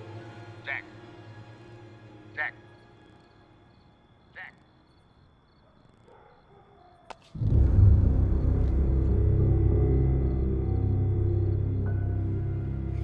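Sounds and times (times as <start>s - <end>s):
man calling out: 0.6s - 0.9s, 2.3s - 2.7s, 4.3s - 4.8s
deep sustained music swell: 7.4s - 13.0s.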